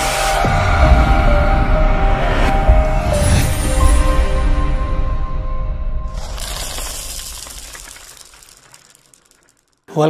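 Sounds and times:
crackling shimmering sound effect: 6.1 - 9.8.

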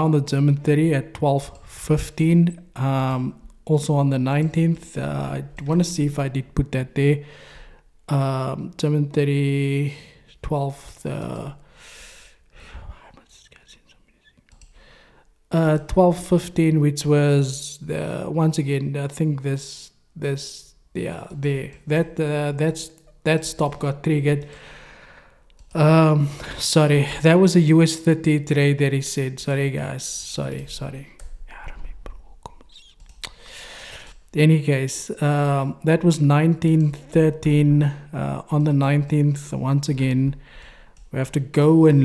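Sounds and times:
breathing: 7.2 - 7.9, 9.9 - 10.3, 11.6 - 13.1, 14.6 - 15.4, 24.4 - 25.6, 33.3 - 34.2, 40.4 - 41.0
man whispering: 12.3 - 14.4, 30.7 - 33.4
faint clicks: 14.2 - 15.4, 25.5 - 25.8.

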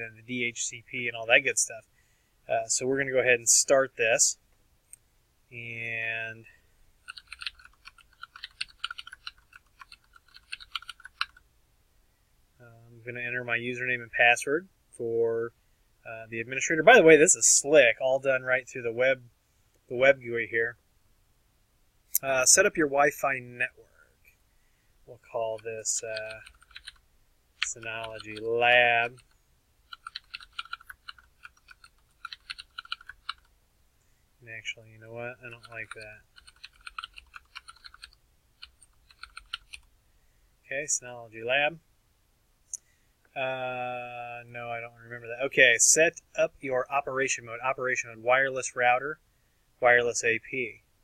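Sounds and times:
typing on computer keyboard: 7.0 - 11.4, 26.2 - 27.0, 27.6 - 28.5, 29.9 - 33.5, 35.5 - 39.9.

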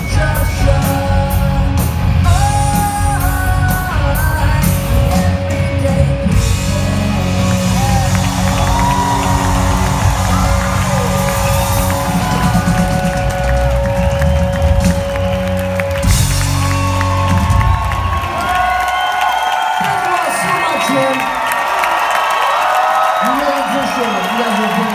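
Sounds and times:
live rock band playing: 0.0 - 19.0
audience cheering in a hall: 0.0 - 24.9.

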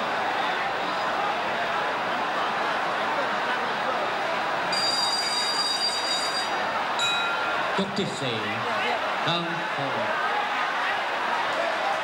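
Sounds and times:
stadium crowd noise: 0.0 - 12.0
ringside bell ringing: 4.7 - 7.6.

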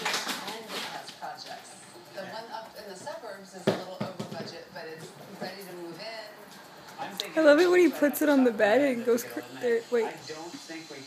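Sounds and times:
ball bouncing on hard floor: 2.9 - 5.6.

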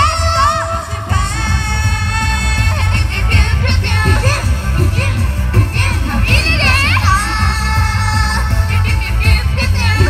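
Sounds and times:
pop backing track with bass beat: 0.0 - 10.0.

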